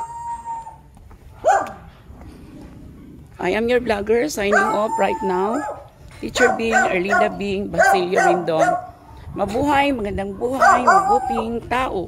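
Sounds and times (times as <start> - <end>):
dog howling: 0.0 - 0.8, 4.4 - 8.9, 10.6 - 11.6.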